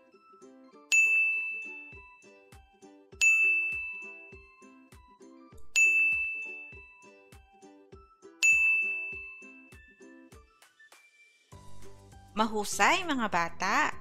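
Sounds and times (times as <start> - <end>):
soft background music with beat: 0.0 - 12.9
bright bell-like chime: 0.9 - 2.2, 3.2 - 4.8, 5.6 - 7.2, 8.4 - 10.0.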